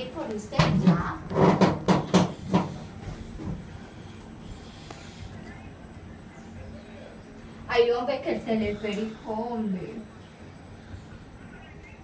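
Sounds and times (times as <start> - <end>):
cable car low hum: 0.0 - 12.0
cable car knocks and clunks: 0.5 - 3.7.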